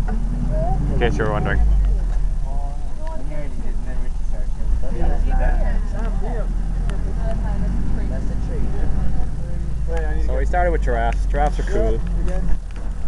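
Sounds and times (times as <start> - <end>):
vehicle engine low rumble: 0.0 - 13.0.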